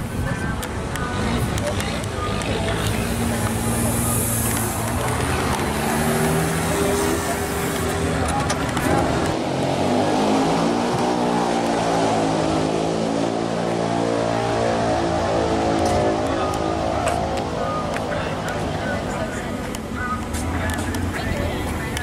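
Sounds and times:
car engine running: 0.0 - 11.8, 14.4 - 22.0
voices: 0.0 - 22.0.

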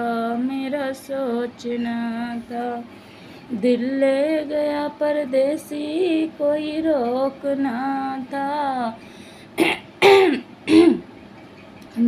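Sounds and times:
woman singing: 0.0 - 2.9, 3.5 - 9.0
woman clearing her throat: 9.6 - 11.1.

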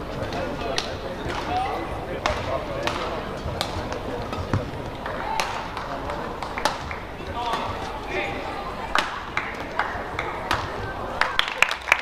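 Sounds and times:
murmur of sports hall: 0.0 - 12.0
racket hitting shuttlecock: 0.3 - 1.6, 2.2 - 8.0, 8.9 - 10.8.

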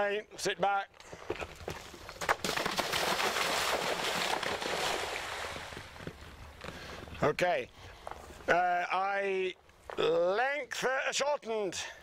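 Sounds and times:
water splashing: 2.4 - 6.0.

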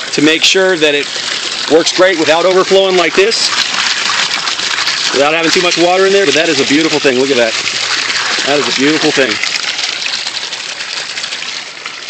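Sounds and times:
water splashing into plastic tank: 0.0 - 12.0.

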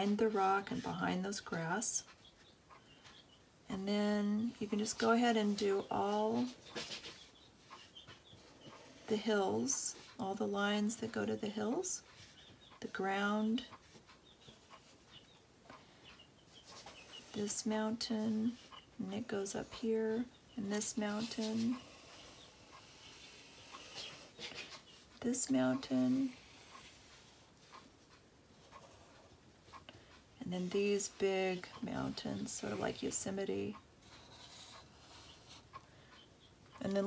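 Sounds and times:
marker drawing on paper: 20.8 - 24.6, 25.7 - 27.8, 34.0 - 35.8.

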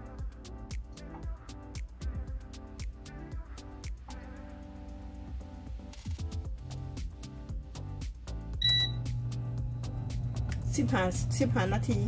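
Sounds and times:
background music: 0.0 - 12.0
short beep of touch panel: 8.6 - 9.0
air fryer fan humming: 8.6 - 12.0.

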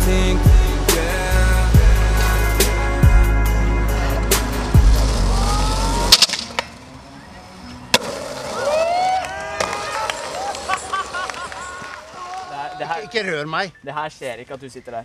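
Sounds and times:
hip hop music: 0.0 - 6.4
skateboard rolling on asphalt: 4.0 - 12.4
distant voices shouting: 5.2 - 6.6, 8.4 - 13.6
skateboard clack: 6.0 - 6.8, 7.9 - 12.2.

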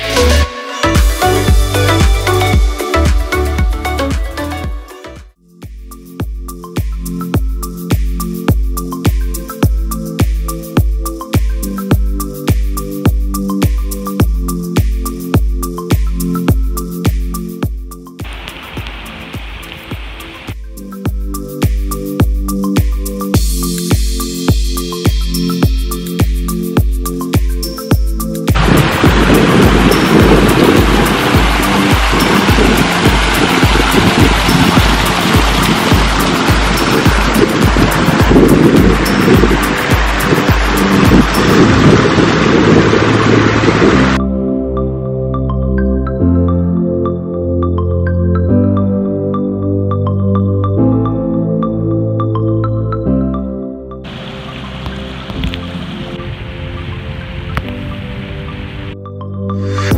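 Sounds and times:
background music with steady beat: 0.0 - 42.0, 58.9 - 59.9
stream rushing over rocks: 18.2 - 20.6, 28.6 - 44.2, 54.1 - 59.0.

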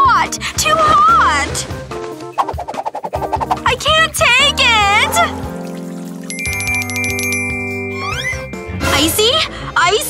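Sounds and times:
background music: 0.0 - 10.0
rapid bell-like trill: 6.3 - 8.7.

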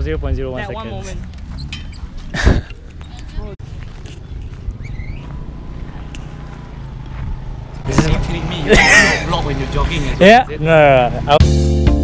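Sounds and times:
wind rumble: 1.2 - 8.3
faint rising chirp: 4.2 - 7.8.

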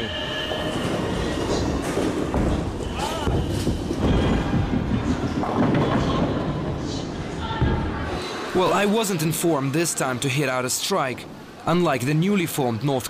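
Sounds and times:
clatter of other bowling lanes: 0.5 - 7.8
bowling ball rolling on wooden lane: 0.6 - 7.0
bowling ball crashing into pins: 0.8 - 6.8.

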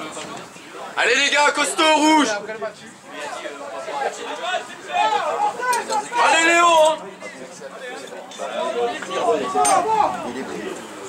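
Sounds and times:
voices talking and calling out: 0.0 - 11.0.

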